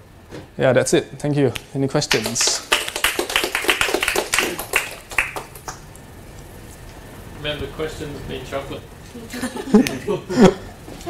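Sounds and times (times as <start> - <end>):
small audience clapping: 2.0 - 6.0.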